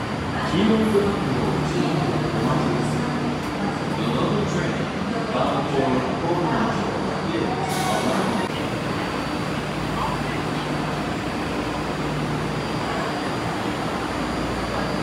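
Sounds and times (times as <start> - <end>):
voices: 0.2 - 15.0.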